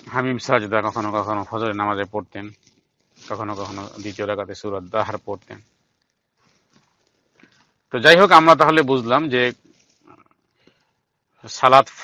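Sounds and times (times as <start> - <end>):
man talking: 0.0 - 2.6, 3.2 - 5.6, 7.9 - 9.6, 11.4 - 12.0
faint room hiss: 0.0 - 12.0.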